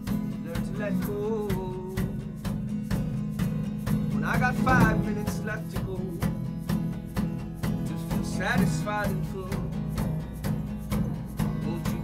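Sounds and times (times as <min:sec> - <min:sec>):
percussion beat: 0:00.0 - 0:12.0
strummed acoustic guitar: 0:00.0 - 0:12.0.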